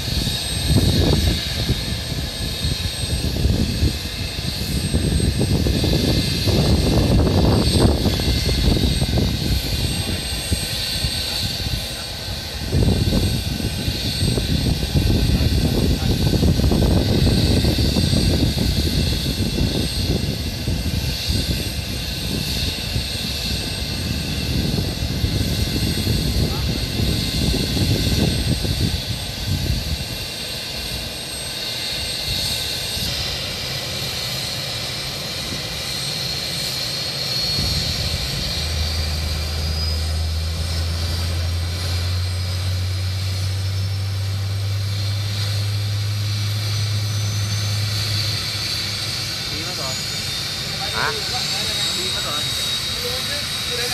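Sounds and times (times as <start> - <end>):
helicopter turbine whine: 0.0 - 53.9.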